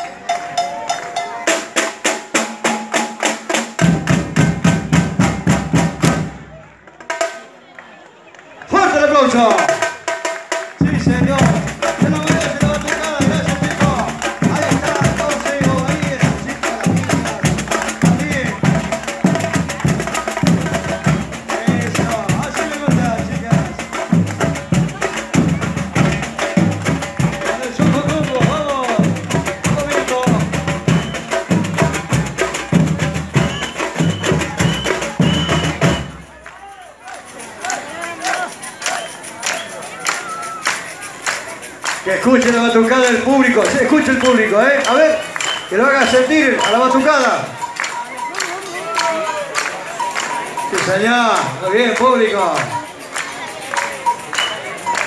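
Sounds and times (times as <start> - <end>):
drum line playing: 0.0 - 7.6, 8.7 - 55.0
crowd noise: 0.0 - 55.0.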